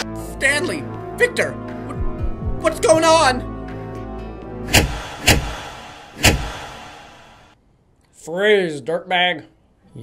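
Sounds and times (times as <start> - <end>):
heavy echoing clunks: 4.7 - 7.6.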